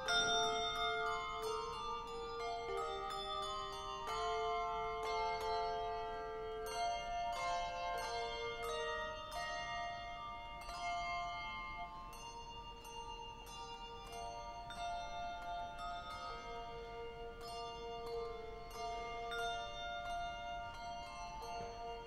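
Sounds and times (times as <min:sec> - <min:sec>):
handbell choir playing: 0:00.0 - 0:22.0.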